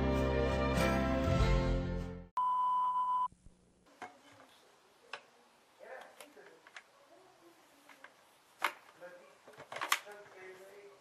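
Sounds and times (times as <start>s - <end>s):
music: 0.0s - 2.3s.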